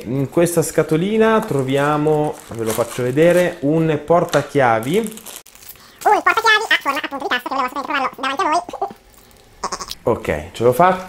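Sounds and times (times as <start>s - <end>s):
man straining vocal noises: 5.9s - 10.0s.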